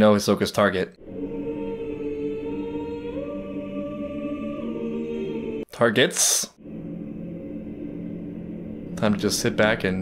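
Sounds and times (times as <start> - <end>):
low drone of held tones: 1.0 - 5.7, 6.6 - 10.0.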